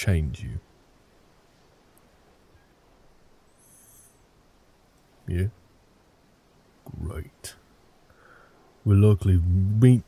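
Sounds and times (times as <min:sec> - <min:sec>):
faint high hiss: 0:00.0 - 0:10.0.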